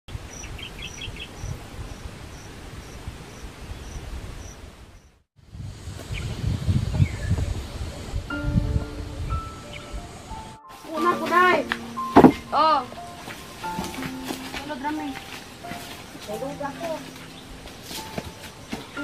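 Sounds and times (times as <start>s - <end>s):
wind rumbling on microphone: 0.1s - 10.6s
music with long held notes: 8.3s - 19.0s.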